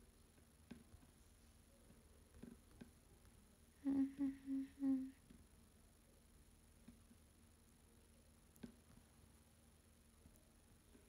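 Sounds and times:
woman humming: 3.8 - 5.2
woman murmuring and laughing: 3.8 - 5.2.

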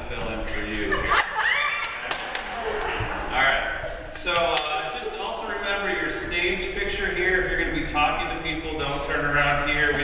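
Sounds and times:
man speaking over sound system: 3.3 - 10.0.

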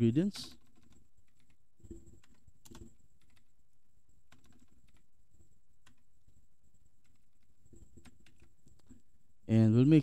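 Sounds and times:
faint keyboard keystrokes: 0.5 - 3.5, 4.3 - 5.1, 7.0 - 9.0.

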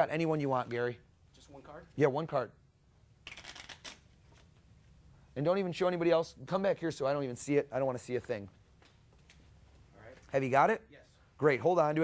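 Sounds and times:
playing cards flicking: 3.2 - 4.6.

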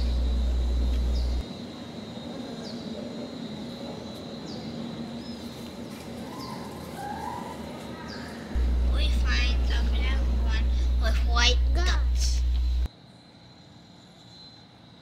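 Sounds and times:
birds chirping: 0.0 - 1.4, 8.1 - 12.9
loud low hum: 0.0 - 1.4, 8.5 - 12.9.

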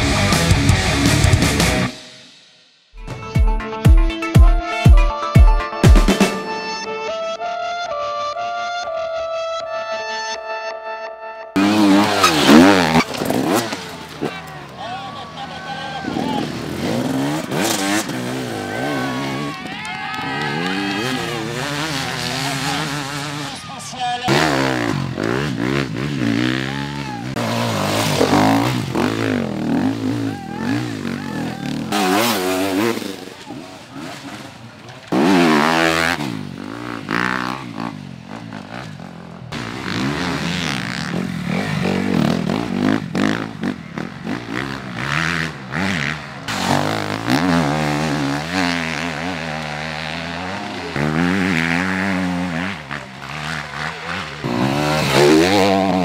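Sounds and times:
motorcycle engines revving: 11.6 - 56.0.

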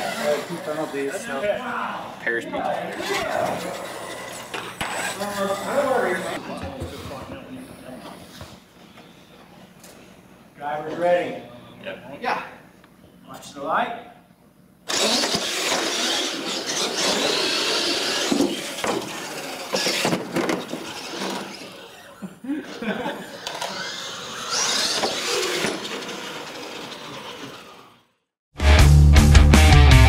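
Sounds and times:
rc truck motors whining: 0.0 - 1.3, 2.7 - 6.9, 14.9 - 28.2.

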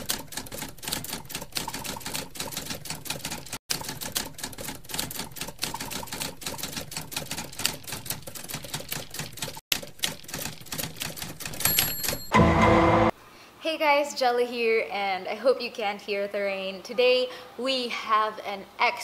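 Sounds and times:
typewriter keys clacking: 0.0 - 12.3.

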